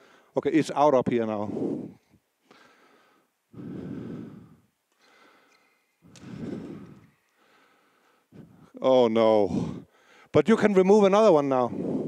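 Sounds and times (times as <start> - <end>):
man breathing: 0.0 - 0.4, 1.4 - 10.4, 11.7 - 12.0.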